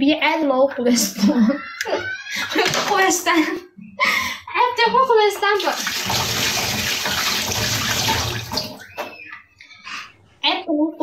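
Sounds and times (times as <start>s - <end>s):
woman's voice: 0.0s - 5.9s, 10.4s - 11.0s
water running in a tiled room: 5.3s - 9.3s.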